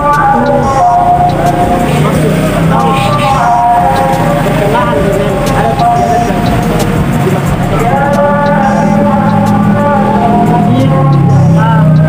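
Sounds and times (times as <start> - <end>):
man talking: 0.0 - 12.0.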